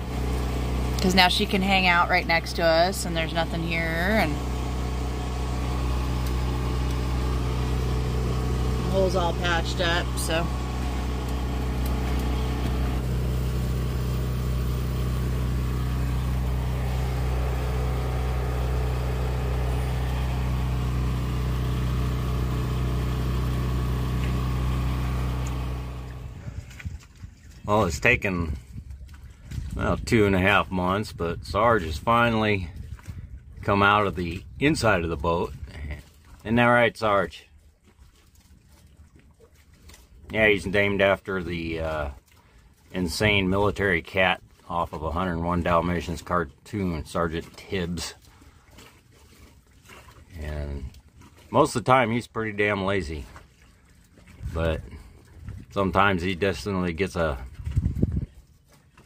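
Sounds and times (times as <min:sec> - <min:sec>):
motor droning steadily: 0:00.0 - 0:27.2, 0:40.1 - 0:59.0
low rumble: 0:00.0 - 0:27.3.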